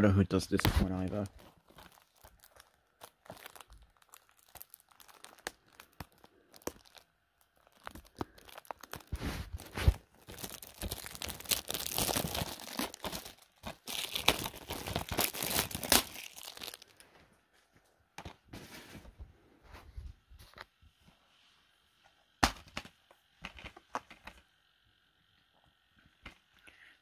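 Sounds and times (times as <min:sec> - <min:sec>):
packaging crinkling and rustling: 0:00.7 - 0:17.1.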